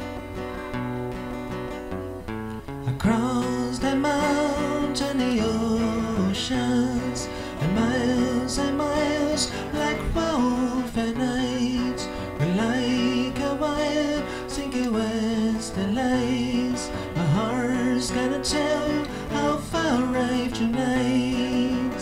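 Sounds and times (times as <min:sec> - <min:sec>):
amplified acoustic guitar: 0:00.0 - 0:22.0
man singing long notes: 0:03.0 - 0:22.0.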